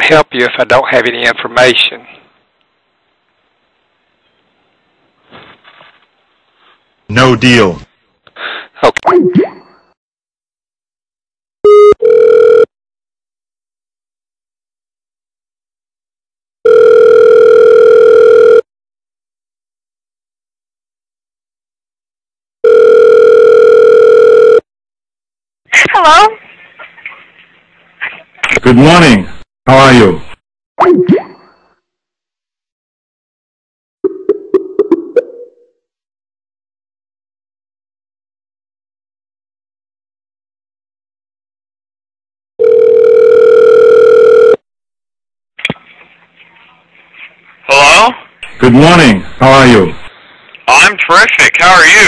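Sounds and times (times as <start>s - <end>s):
telephone ringback tone: 11.7s - 12.7s, 16.6s - 18.6s, 22.6s - 24.6s, 42.6s - 44.6s.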